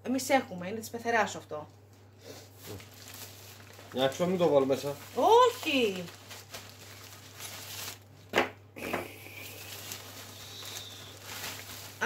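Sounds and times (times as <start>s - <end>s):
plastic packaging crinkling: 2.6s - 8.3s, 9.2s - 12.0s
sharp plastic crackles: 2.6s - 12.0s.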